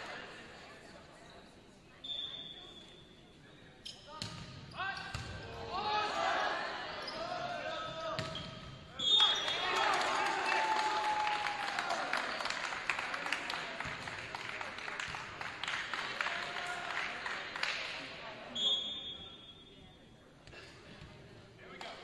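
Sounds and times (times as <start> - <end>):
players shouting: 5.4 - 8.0, 9.2 - 12.3.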